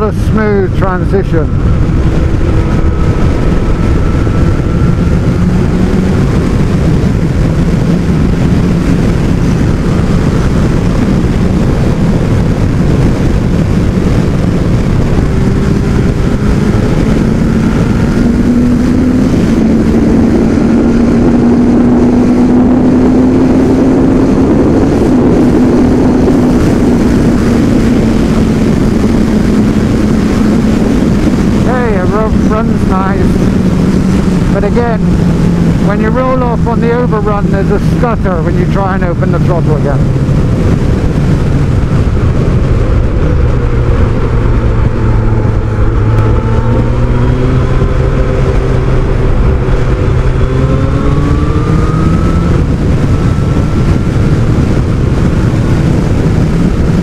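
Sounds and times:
motorcycle engine running: 0:00.0 - 0:57.0
wind rushing over microphone: 0:00.0 - 0:57.0.

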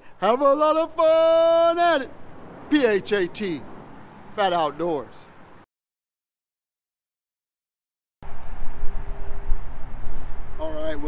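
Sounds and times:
wind buffeting microphone: 0:08.2 - 0:11.0.

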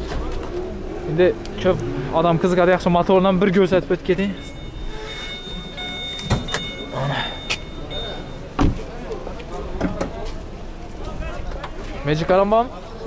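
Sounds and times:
car electronic warning tone: 0:03.5 - 0:08.7.

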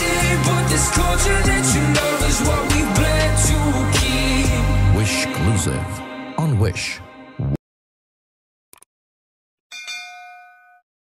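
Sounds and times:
bell ding: 0:09.7 - 0:10.9.

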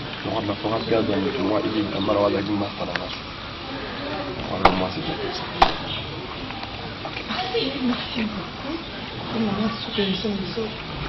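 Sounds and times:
faint low talk: 0:00.2 - 0:11.0.

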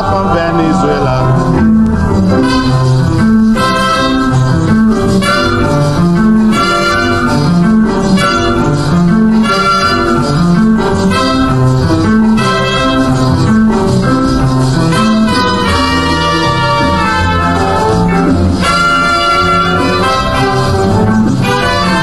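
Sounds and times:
calypso band playing: 0:00.0 - 0:22.0.

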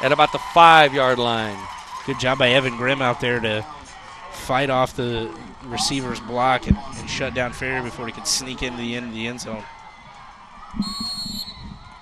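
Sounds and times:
crowd noise: 0:00.0 - 0:12.0
referee's whistle: 0:10.8 - 0:11.9.

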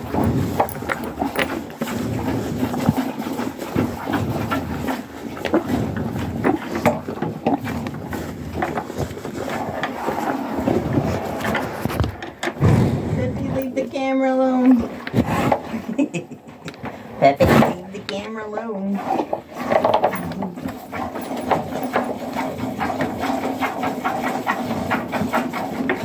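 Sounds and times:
rubbing scrapes on microphone: 0:00.0 - 0:12.2
cow snuffling: 0:00.0 - 0:13.7, 0:19.0 - 0:26.0.

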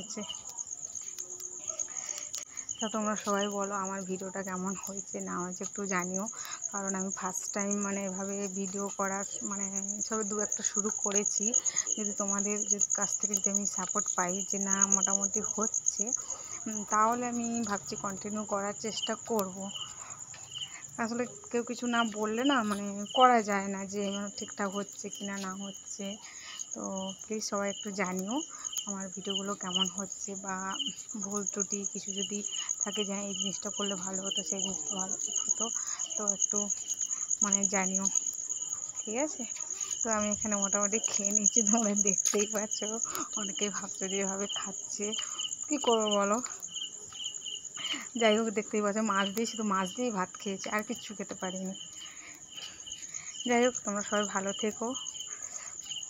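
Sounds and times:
woman talking: 0:00.0 - 0:00.6, 0:01.6 - 0:36.8, 0:37.4 - 0:38.2, 0:39.0 - 0:46.6, 0:47.8 - 0:51.8, 0:53.4 - 0:55.0
woman's voice: 0:00.0 - 0:00.6, 0:01.6 - 0:38.2, 0:39.0 - 0:46.6, 0:47.8 - 0:51.8, 0:53.2 - 0:55.0
insect trill: 0:00.0 - 0:56.0.

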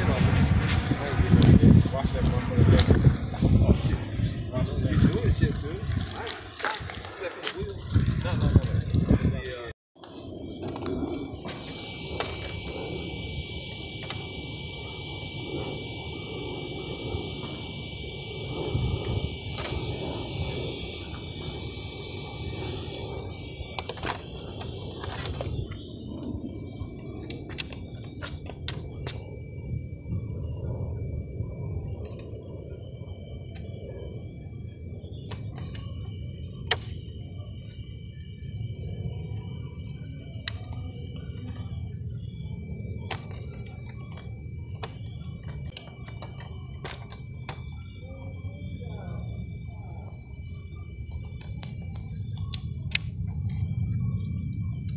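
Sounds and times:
steady low rumble: 0:00.0 - 0:54.9
thin high whine: 0:00.0 - 0:54.9.

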